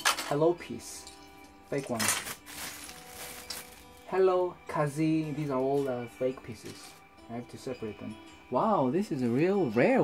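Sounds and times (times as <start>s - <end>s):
bag rustling: 1.9s - 4.1s.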